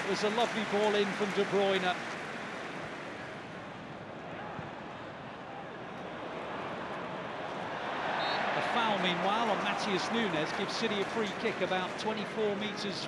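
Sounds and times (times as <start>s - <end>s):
large stadium crowd noise: 0.0s - 13.0s.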